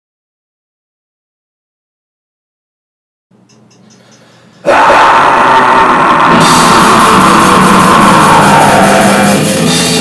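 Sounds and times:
bass guitar: 4.7 - 10.0
distorted electric guitar: 4.7 - 10.0
drum kit with dense cymbals: 6.4 - 10.0.

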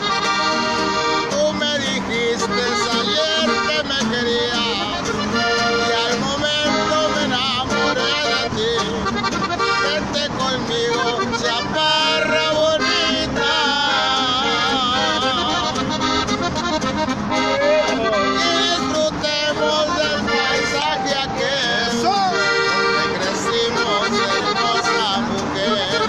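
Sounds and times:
button accordion melody: 0.0 - 26.0
strummed acoustic guitar: 0.0 - 26.0
man singing: 1.2 - 16.1, 17.4 - 26.0.

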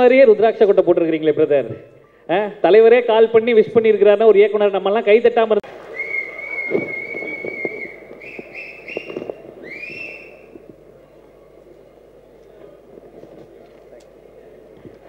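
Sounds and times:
person whistling: 6.0 - 10.5.

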